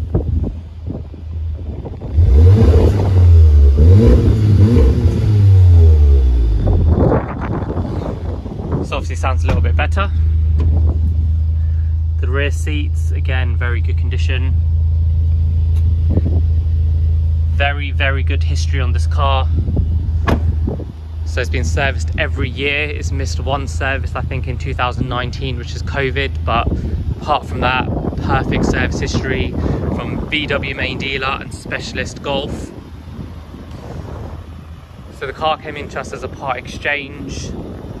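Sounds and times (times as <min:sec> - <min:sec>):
wind buffeting microphone: 0:00.0 - 0:11.8, 0:14.6 - 0:17.6, 0:18.2 - 0:38.0
car engine idling: 0:00.0 - 0:38.0.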